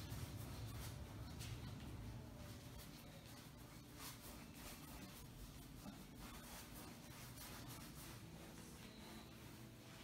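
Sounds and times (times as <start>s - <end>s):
paintbrush scraping on canvas: 2.6s - 10.0s.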